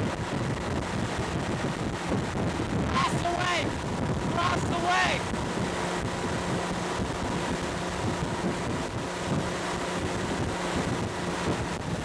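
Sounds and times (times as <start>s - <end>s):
motorboat running: 0.0s - 12.0s
water rushing: 0.0s - 12.0s
wind buffeting microphone: 0.0s - 12.0s.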